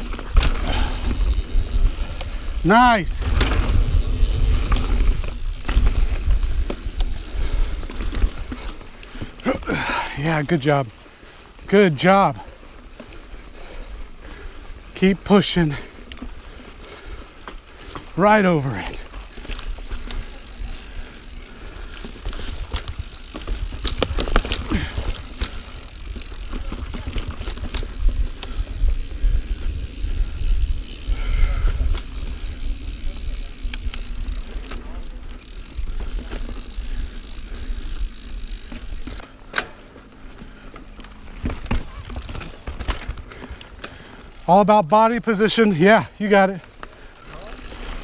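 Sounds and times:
bike tyres rolling on dirt: 0:00.0 - 0:48.0
bike knocks and rattles: 0:21.7 - 0:30.1, 0:38.1 - 0:44.0.

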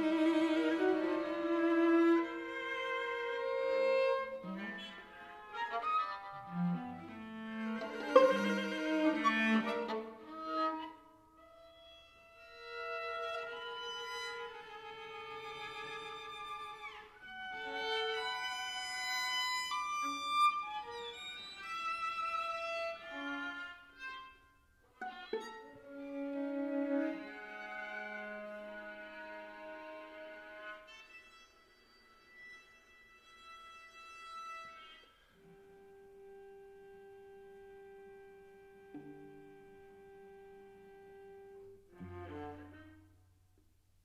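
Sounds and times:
string quartet playing: 0:00.0 - 0:43.2.

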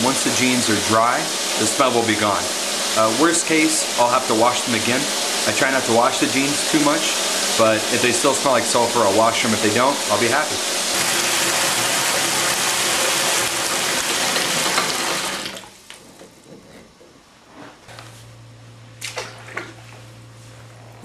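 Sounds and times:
water rushing from a tap: 0:00.0 - 0:15.7
low steady hum: 0:15.9 - 0:21.0.

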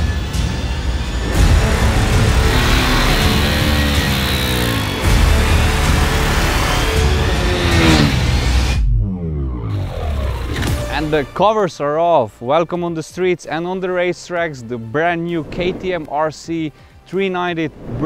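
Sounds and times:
music: 0:00.0 - 0:18.0
motorcycle engine revving: 0:01.2 - 0:11.4.

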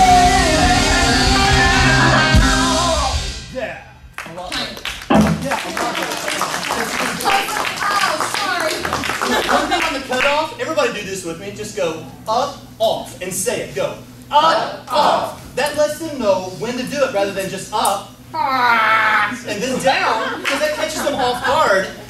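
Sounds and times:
live rock band final chord: 0:00.0 - 0:03.5
applause: 0:04.2 - 0:10.4
voices: 0:05.2 - 0:10.9, 0:11.7 - 0:22.0.

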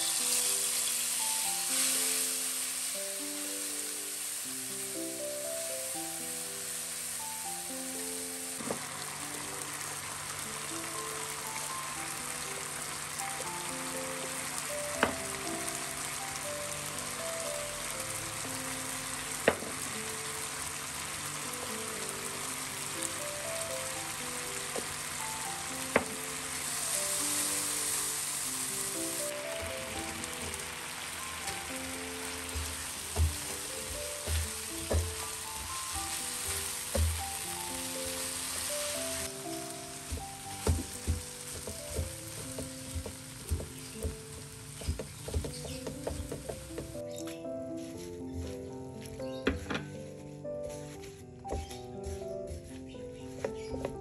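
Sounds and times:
paste sizzling in a wok: 0:00.0 - 0:47.0
background music: 0:00.0 - 0:54.0
spatula knocking in a wok: 0:32.5 - 0:35.7, 0:40.1 - 0:47.0.

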